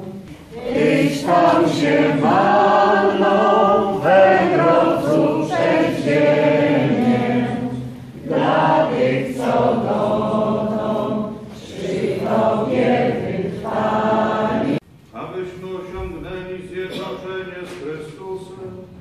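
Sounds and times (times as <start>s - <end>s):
congregation singing: 0.0s - 14.8s.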